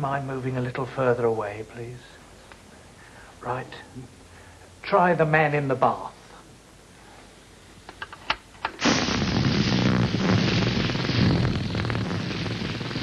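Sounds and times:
crackling fart sound: 8.7s - 13.0s.

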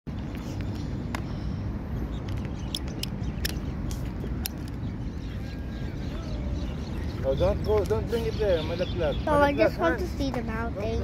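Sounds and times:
low city rumble: 0.1s - 11.0s.

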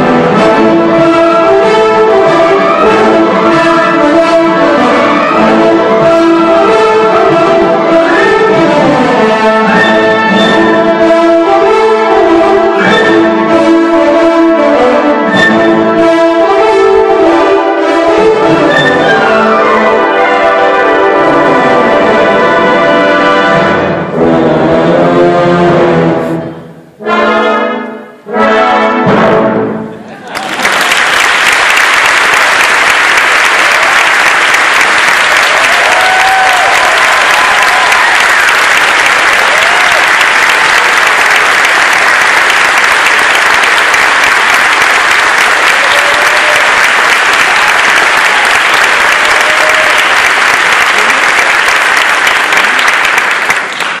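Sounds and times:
audience applause: 30.2s - 54.0s.

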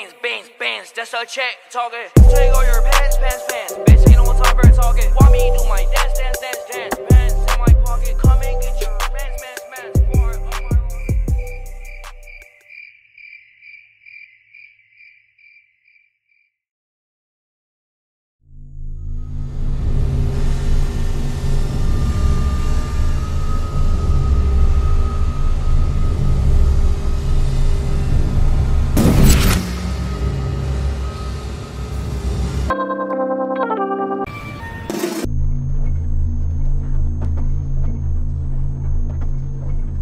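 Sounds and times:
hip-hop beat: 0.0s - 12.5s
cricket chirps: 8.4s - 16.6s.

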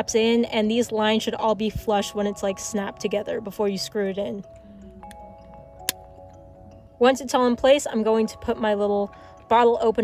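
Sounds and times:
background music with soft held tones: 0.0s - 10.0s.

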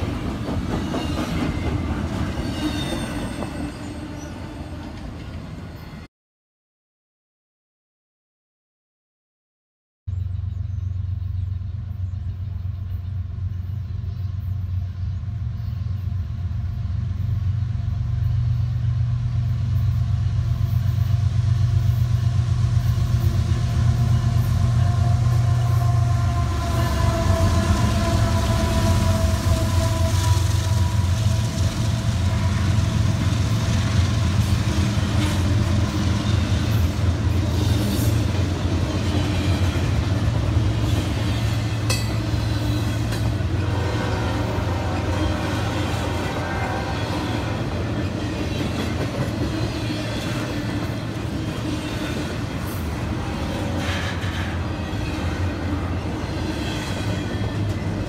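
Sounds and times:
train wheels clattering over rails: 0.0s - 3.8s, 47.8s - 58.0s
diesel locomotive engine rumble: 0.0s - 5.9s, 10.1s - 58.0s.

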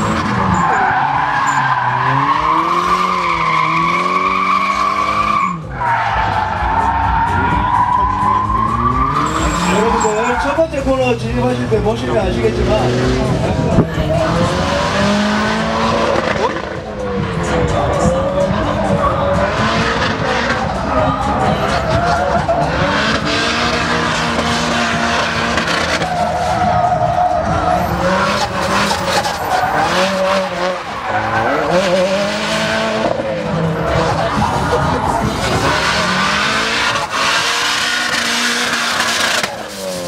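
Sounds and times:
car engine revving hard: 0.0s - 40.0s
tyres squealing and skidding: 0.0s - 40.0s.

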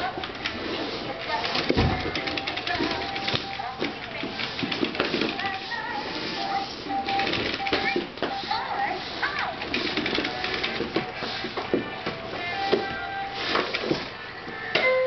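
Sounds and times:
toy walker rolling on wooden floor: 0.0s - 14.1s.

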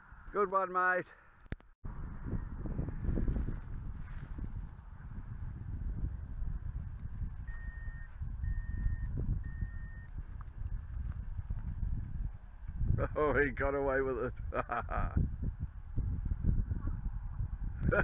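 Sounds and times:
wind buffeting microphone: 1.8s - 18.0s
short high beeps: 7.4s - 10.1s.

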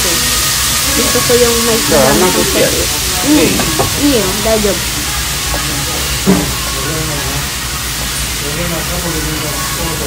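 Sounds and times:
food sizzling on a griddle: 0.0s - 10.0s.

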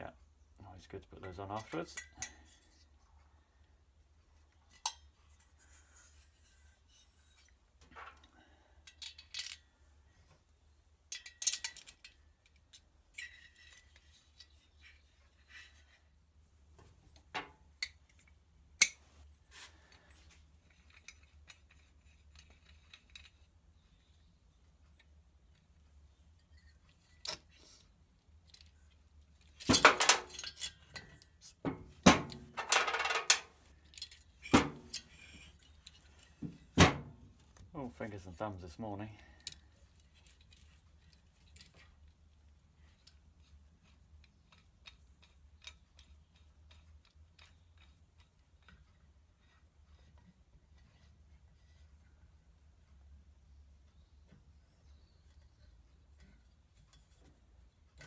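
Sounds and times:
metallic clinks and clanks: 1.2s - 2.8s, 6.4s - 9.7s, 11.1s - 15.0s, 29.4s - 31.4s.

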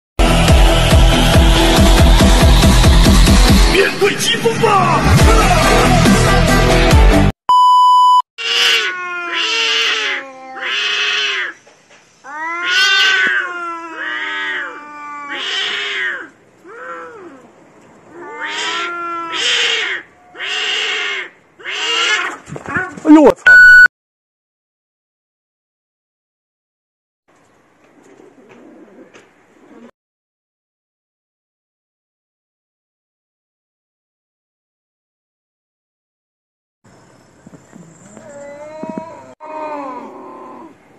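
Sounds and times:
loud music: 0.2s - 7.3s
electronic beep: 7.5s - 8.2s, 23.5s - 23.9s
cats yowling: 8.4s - 11.6s, 12.2s - 23.0s, 37.7s - 40.8s.

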